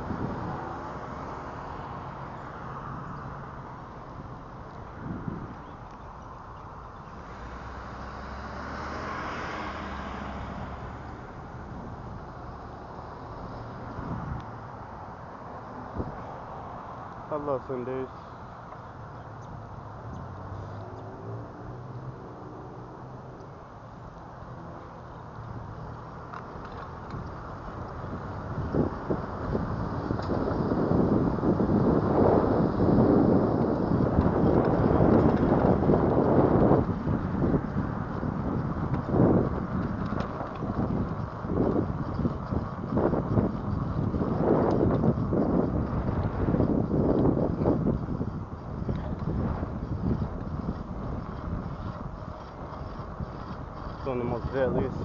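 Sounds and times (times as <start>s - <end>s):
bicycle tyre rumble on concrete: 0.0s - 55.0s
wind buffeting microphone: 0.0s - 55.0s
wheels knocking over cracks: 26.2s - 55.0s.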